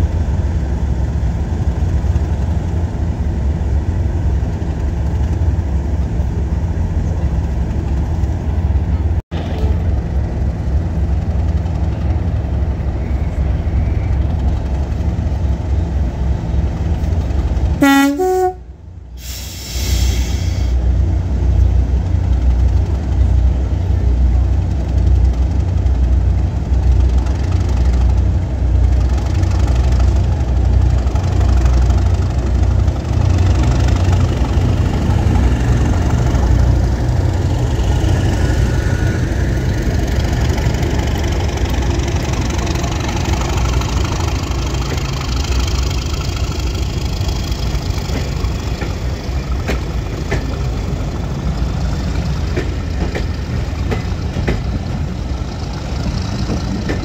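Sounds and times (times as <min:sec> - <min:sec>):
diesel locomotive engine rumble: 0:00.0 - 0:57.0
train wheels on rails: 0:00.0 - 0:57.0.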